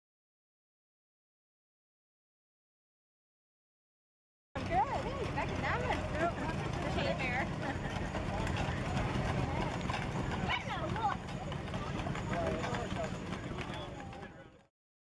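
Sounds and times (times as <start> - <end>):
hooves clip-clopping on pavement: 4.6 - 14.7
people talking: 4.6 - 14.7.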